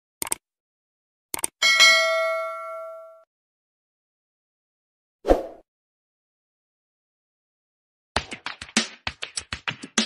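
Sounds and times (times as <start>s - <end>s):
bright bell ding: 1.6s - 3.2s.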